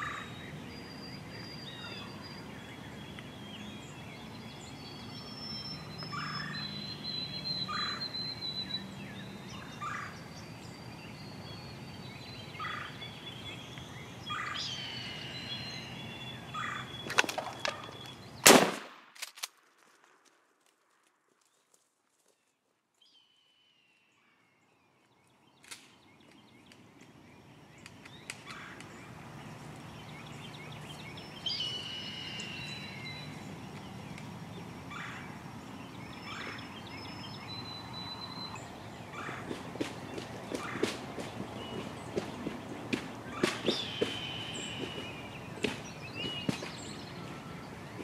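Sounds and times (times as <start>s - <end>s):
birds singing: 0.0s - 18.5s, 23.0s - 48.0s
wild turkey calling: 6.1s - 6.6s, 7.6s - 8.2s, 12.6s - 13.0s, 16.5s - 18.1s
shotgun blast: 18.4s - 19.2s.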